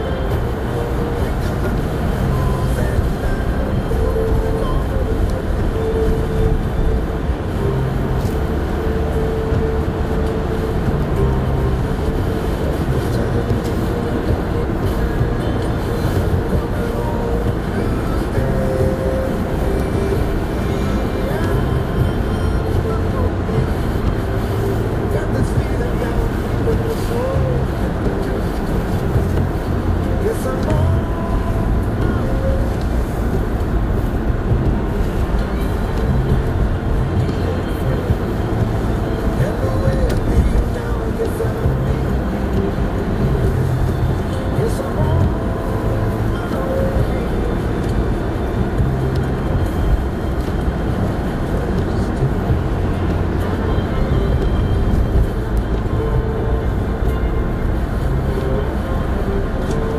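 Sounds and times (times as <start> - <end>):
car engine and road rumble: 0.0 - 59.9
car radio music: 0.0 - 59.9.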